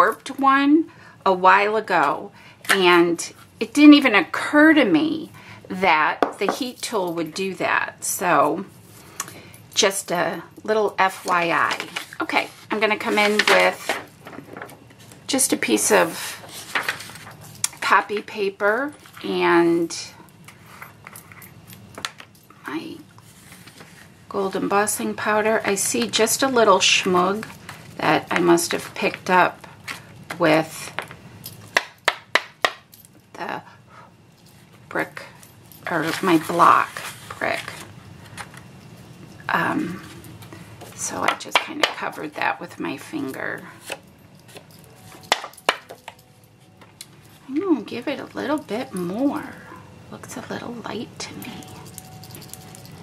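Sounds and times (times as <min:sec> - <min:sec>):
paper and card stock shifting: 0:11.8 - 0:14.7.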